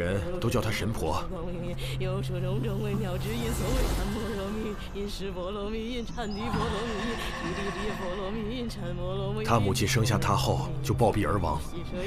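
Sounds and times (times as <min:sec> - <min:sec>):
low steady drone: 0:01.2 - 0:11.0.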